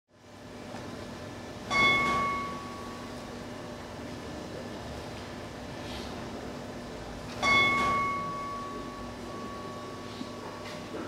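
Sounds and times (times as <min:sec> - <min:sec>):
low hall hum: 0:00.1 - 0:11.0
bell-like metal percussion note: 0:01.7 - 0:03.1, 0:07.4 - 0:11.0.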